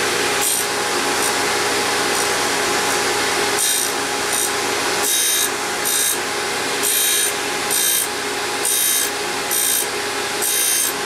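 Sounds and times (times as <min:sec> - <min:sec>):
grinding wheel rasp: 0:00.0 - 0:06.2, 0:06.8 - 0:11.0
grinder spindle humming: 0:00.0 - 0:11.0.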